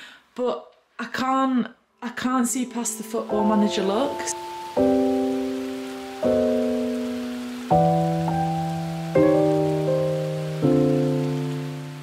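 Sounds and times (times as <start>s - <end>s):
slow keyboard chords: 3.4s - 12.0s.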